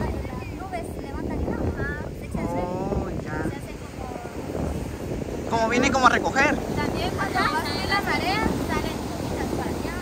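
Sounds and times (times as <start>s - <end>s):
ocean surf breaking: 0.0s - 10.0s
voices talking: 0.0s - 10.0s
wind buffeting microphone: 0.0s - 10.0s.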